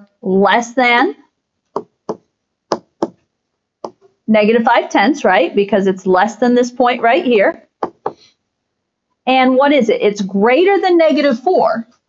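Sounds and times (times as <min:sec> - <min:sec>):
stylus tapping on tablet screen: 0:01.7 - 0:04.1, 0:07.8 - 0:08.3.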